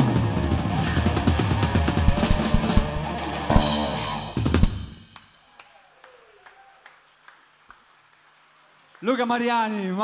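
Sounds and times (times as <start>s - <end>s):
scattered hand claps: 5.1s - 9.2s.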